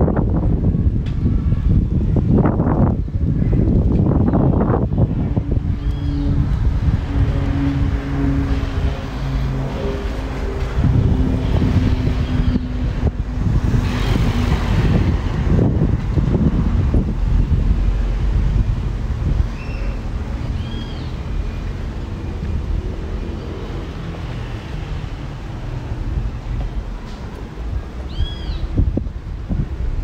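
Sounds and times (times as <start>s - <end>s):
wind rumble on microphone: 0.0s - 30.0s
vehicle engine running: 3.6s - 24.3s.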